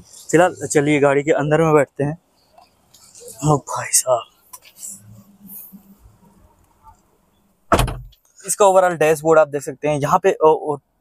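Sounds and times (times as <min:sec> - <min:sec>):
car door shutting thud: 0:07.7 - 0:08.2.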